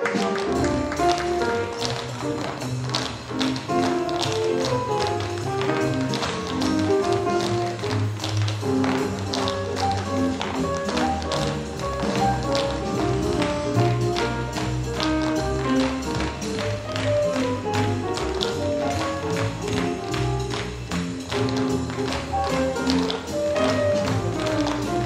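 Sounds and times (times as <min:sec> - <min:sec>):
swing music: 0:00.0 - 0:25.0
tap shoes clicking on stage: 0:00.0 - 0:25.0.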